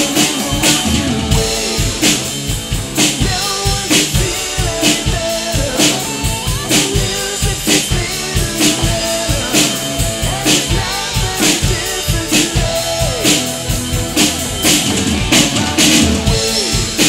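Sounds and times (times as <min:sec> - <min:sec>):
man singing: 0:00.0 - 0:14.4, 0:15.2 - 0:17.0
cymbals ringing: 0:00.0 - 0:17.0
drum kit rock beat: 0:00.0 - 0:17.0
guitar: 0:00.0 - 0:17.0.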